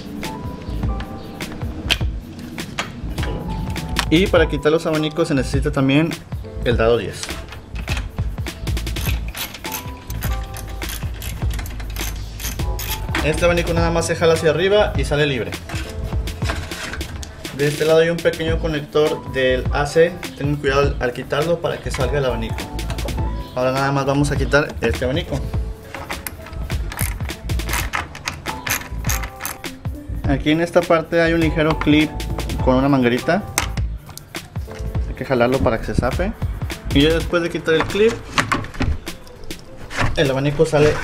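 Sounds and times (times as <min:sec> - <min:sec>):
background music: 0:00.0 - 0:41.0
hand ratchet clicking: 0:07.2 - 0:13.4, 0:25.8 - 0:29.8.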